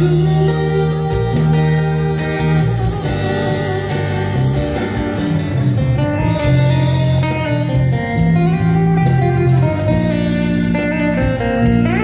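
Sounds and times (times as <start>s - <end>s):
amplified acoustic guitar: 0.0s - 12.0s.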